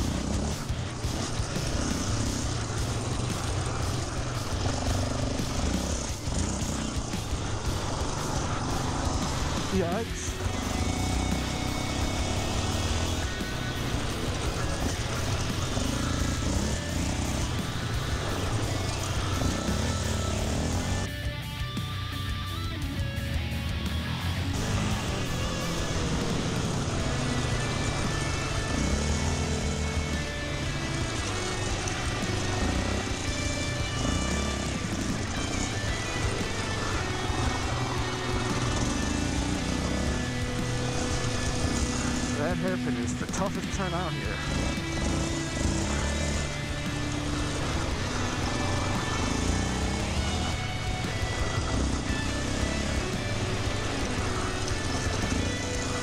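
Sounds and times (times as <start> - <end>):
quad engine revving: 0.0 - 56.0.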